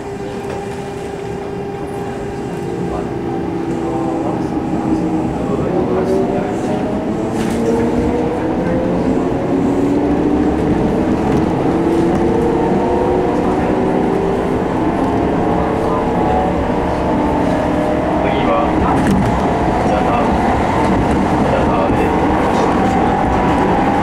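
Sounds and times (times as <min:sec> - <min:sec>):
train running gear rumble: 0:00.0 - 0:24.0.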